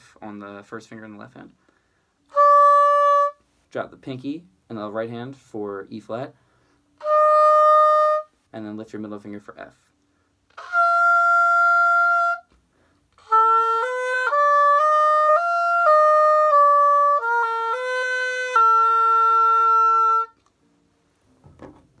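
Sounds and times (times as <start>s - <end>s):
oboe playing scale: 2.2s - 3.4s, 7.0s - 8.4s, 10.5s - 12.6s, 13.2s - 20.5s.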